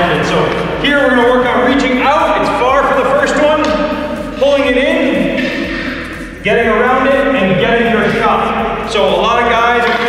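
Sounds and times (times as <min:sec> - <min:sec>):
man narrating: 0:00.0 - 0:10.0.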